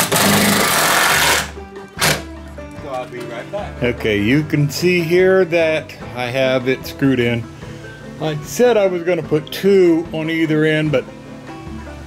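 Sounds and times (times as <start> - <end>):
cordless drill driving a screw: 0.0 - 2.1.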